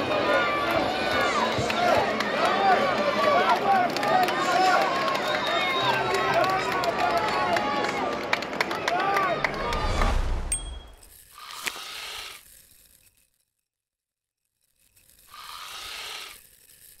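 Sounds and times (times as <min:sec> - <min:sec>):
stadium crowd noise: 0:00.0 - 0:10.8.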